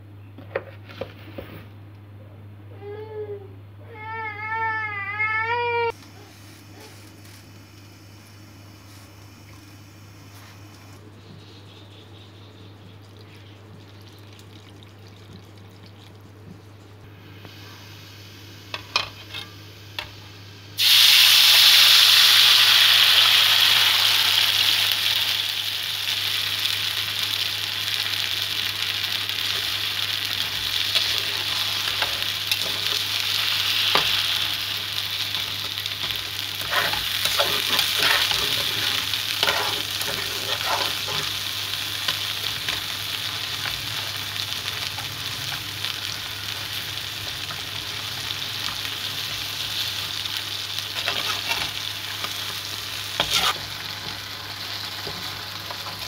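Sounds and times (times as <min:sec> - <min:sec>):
batter sizzling in a pan: 0:17.2 - 0:56.0
metal spatula scraping a pan: 0:36.0 - 0:41.3, 0:51.0 - 0:51.8, 0:53.2 - 0:53.7.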